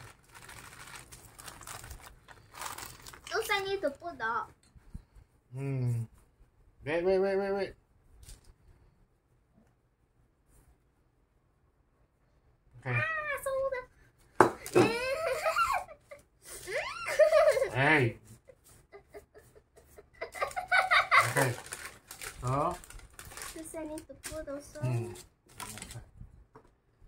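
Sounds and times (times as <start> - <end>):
girl giggling: 14.7 - 17.8, 18.9 - 21.5
adult talking and laughing: 14.8 - 21.6.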